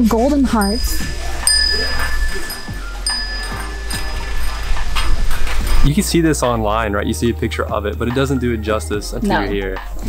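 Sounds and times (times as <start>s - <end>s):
small metal bells chiming: 0.0s - 6.0s.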